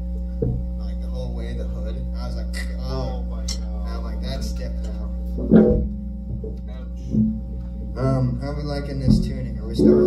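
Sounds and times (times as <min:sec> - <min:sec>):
amplifier hum: 0:00.0 - 0:10.0
plucked electric guitar note: 0:05.3 - 0:07.7, 0:09.0 - 0:10.0.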